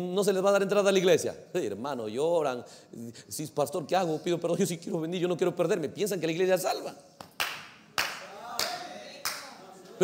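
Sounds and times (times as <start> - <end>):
hand claps echoing: 7.2 - 9.6.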